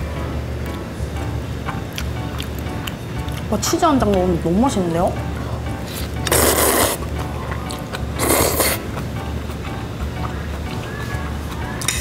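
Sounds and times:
person slurping noodles: 0:05.9 - 0:07.0, 0:08.2 - 0:08.9.

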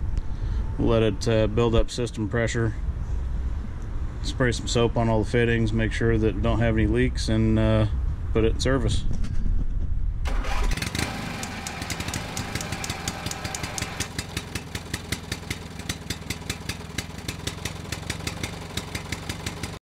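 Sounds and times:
diesel engine starting and idling: 0:10.2 - 0:19.8.

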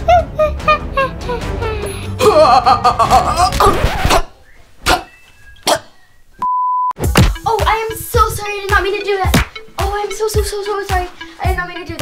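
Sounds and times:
censor bleep tone: 0:06.4 - 0:07.0.

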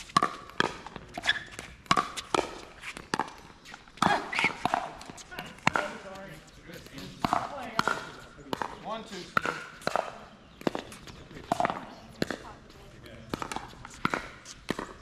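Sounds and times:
paddles hitting plastic ball: 0:00.0 - 0:06.1, 0:07.0 - 0:12.4, 0:13.3 - 0:15.0.

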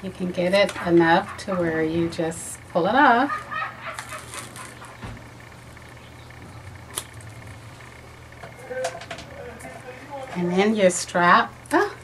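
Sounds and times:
low steady hum: 0:00.0 - 0:12.0
tape peeling rustle: 0:03.9 - 0:04.9.

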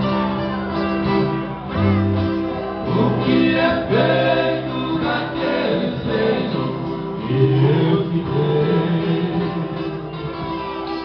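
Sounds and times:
strummed acoustic guitars: 0:00.0 - 0:11.0
men singing in harmony: 0:02.8 - 0:10.1.

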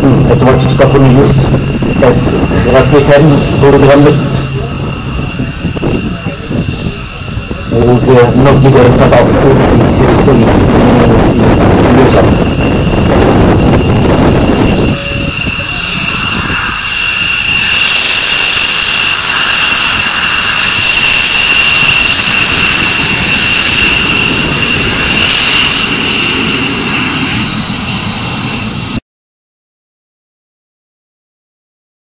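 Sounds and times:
jet engine whine: 0:00.0 - 0:29.0.

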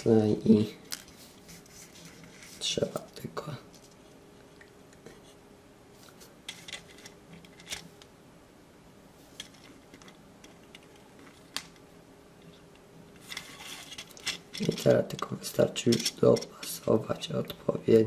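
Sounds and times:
rustling and scraping: 0:00.8 - 0:04.2, 0:05.0 - 0:08.1, 0:09.1 - 0:11.8, 0:12.4 - 0:17.0.

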